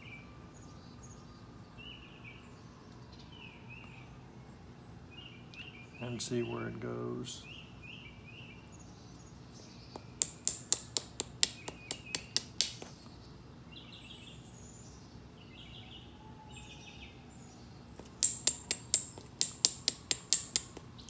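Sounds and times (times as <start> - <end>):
knapping tool striking stone: 10.0 - 13.0, 18.0 - 21.0.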